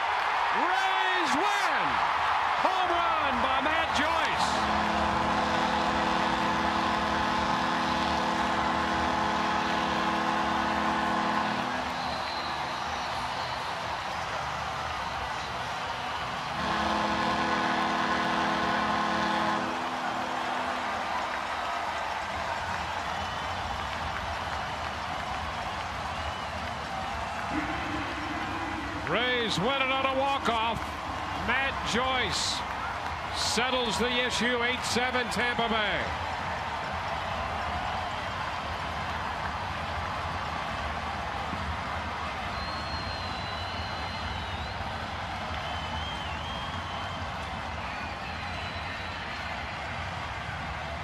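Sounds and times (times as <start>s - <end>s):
crowd cheering: 0.0s - 51.0s
steady held pitched tone: 27.5s - 31.6s.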